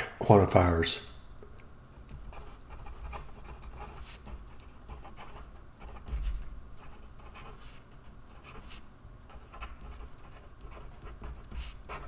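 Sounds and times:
marker pen scratching on paper: 2.1 - 12.0.

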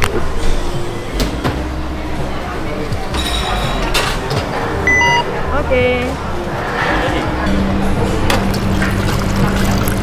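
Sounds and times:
card terminal beep: 4.8 - 5.3.

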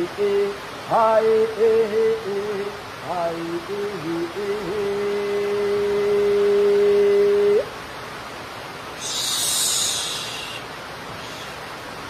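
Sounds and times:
brief high hiss: 9.0 - 11.6.

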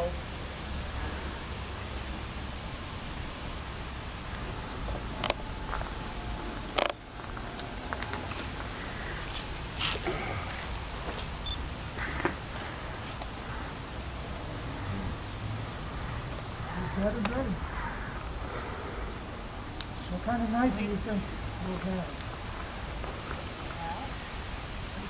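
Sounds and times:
outdoor background hiss: 0.0 - 25.0.

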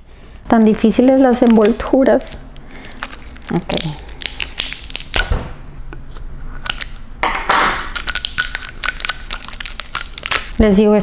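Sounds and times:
plastic wrapping crinkling: 0.5 - 5.4, 6.1 - 7.0, 7.7 - 10.6.

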